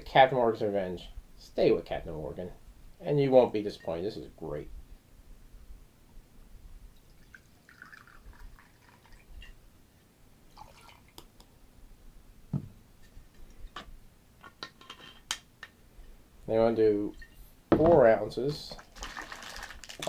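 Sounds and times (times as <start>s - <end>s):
liquid trickling into glass: 7.0s - 9.6s, 10.5s - 11.2s.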